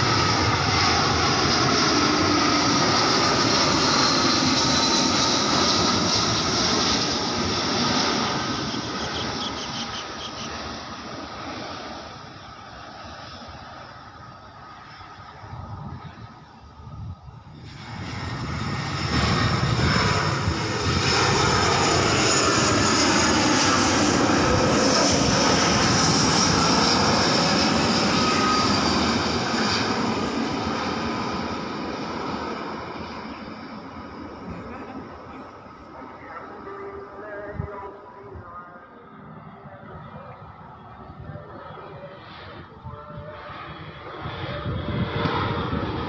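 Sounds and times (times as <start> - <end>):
high jet engine whine: 0.0 - 46.0
jet airliner passing overhead: 0.0 - 46.0.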